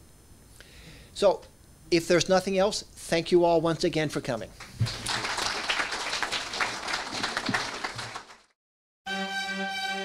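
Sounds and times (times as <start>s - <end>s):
audience applauding: 4.6s - 8.6s.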